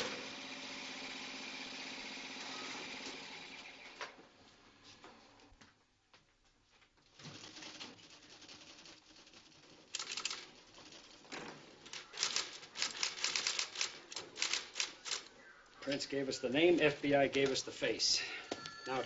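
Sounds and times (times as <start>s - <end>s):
low background noise: 3.5s - 19.0s
typewriter clattering: 7.4s - 15.3s.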